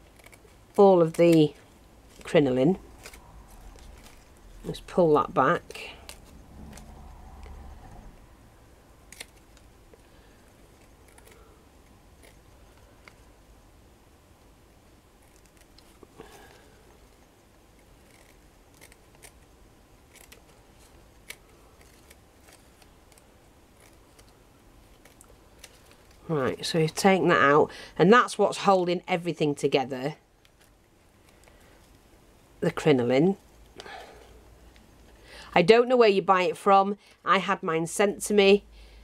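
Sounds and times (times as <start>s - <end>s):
scissors snipping fabric: 17.9s - 19.4s.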